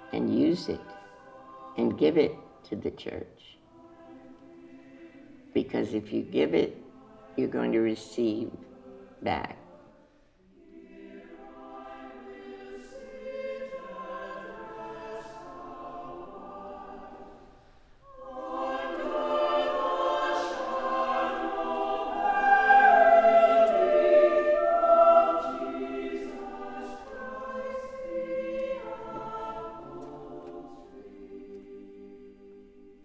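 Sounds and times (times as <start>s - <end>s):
choir singing held chords: 0.0s - 2.7s, 3.6s - 33.0s.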